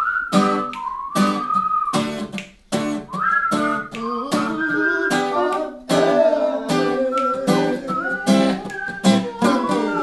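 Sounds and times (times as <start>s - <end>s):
person whistling a melody: 0.0s - 2.4s, 3.0s - 10.0s
acoustic guitar strumming: 0.2s - 10.0s.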